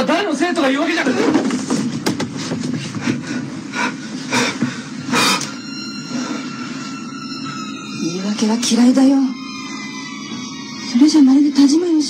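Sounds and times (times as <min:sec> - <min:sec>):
low steady hum: 0:00.0 - 0:12.0
sharp knocks and clicks: 0:01.6 - 0:02.7
thin high tones: 0:05.5 - 0:11.9.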